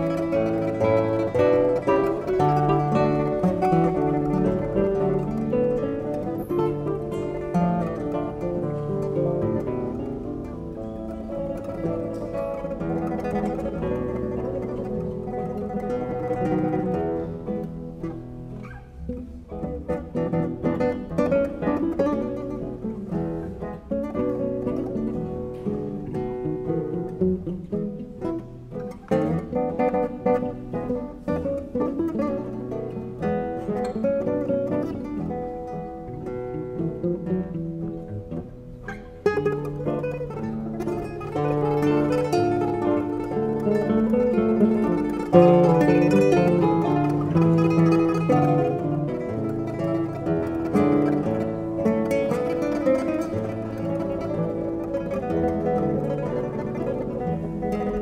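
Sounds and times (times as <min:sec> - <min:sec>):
classical guitars playing: 0:00.0 - 0:58.0.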